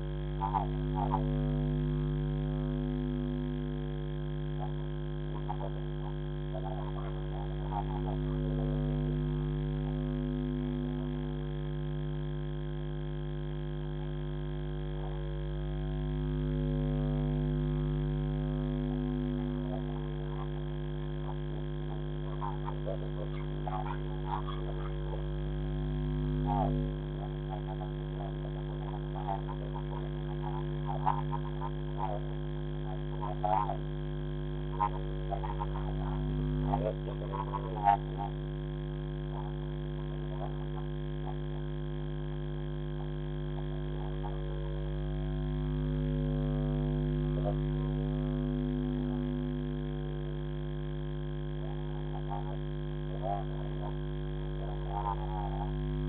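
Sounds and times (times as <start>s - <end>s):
faint wavering sounds: 0.0s - 56.0s
low electrical hum: 0.0s - 56.0s.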